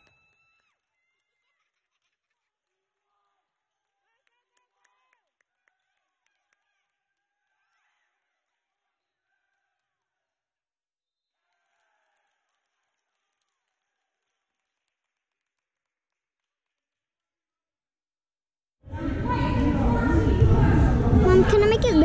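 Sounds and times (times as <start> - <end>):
distant voices: 18.9 - 22.0.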